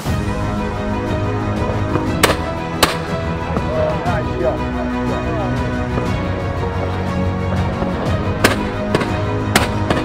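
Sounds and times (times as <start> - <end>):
background music: 0.0 - 10.0
shotgun shots: 2.2 - 3.2, 8.4 - 10.0.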